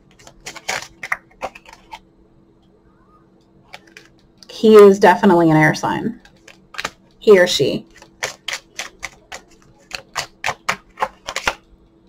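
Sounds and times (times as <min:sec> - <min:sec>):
cards clicking and snapping: 0:00.1 - 0:02.0, 0:06.2 - 0:07.0, 0:07.9 - 0:11.7.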